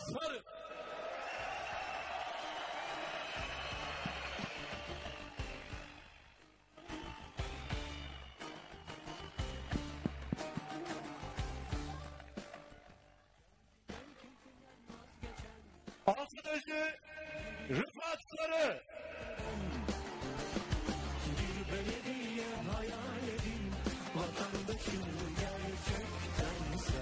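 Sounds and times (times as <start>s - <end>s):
crowd cheering: 0.5s - 13.4s, 18.8s - 27.0s.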